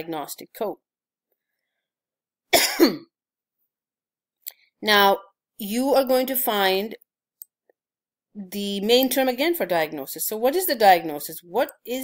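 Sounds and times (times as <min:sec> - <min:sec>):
woman clearing her throat: 0:02.6 - 0:03.1.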